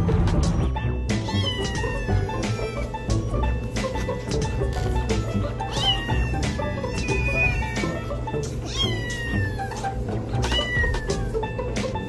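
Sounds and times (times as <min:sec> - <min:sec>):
background music with steady beat: 0:00.0 - 0:12.0
kitten meowing: 0:01.1 - 0:03.6, 0:04.5 - 0:11.5.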